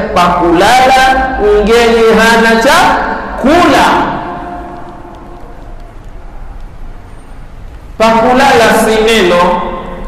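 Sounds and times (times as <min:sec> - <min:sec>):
preacher's voice: 0:00.0 - 0:04.7, 0:08.0 - 0:09.9.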